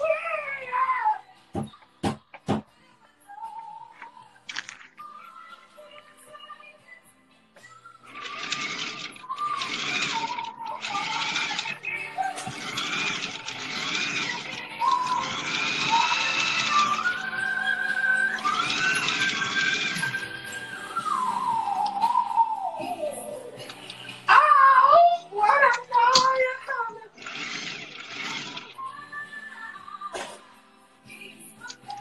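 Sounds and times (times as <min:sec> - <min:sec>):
music: 0:00.0 - 0:32.0
high voice singing: 0:08.0 - 0:30.5, 0:31.1 - 0:32.0.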